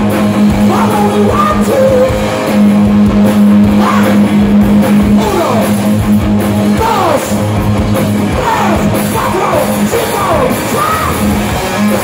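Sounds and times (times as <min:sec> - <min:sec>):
hard rock band playing: 0:00.0 - 0:12.0.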